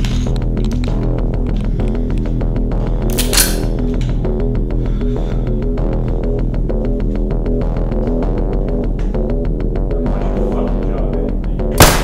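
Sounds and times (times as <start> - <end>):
loud gunshot: 11.8 - 12.0.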